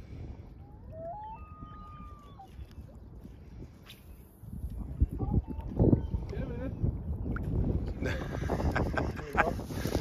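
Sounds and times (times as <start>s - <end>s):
low wind rumble on microphone: 0.0s - 10.0s.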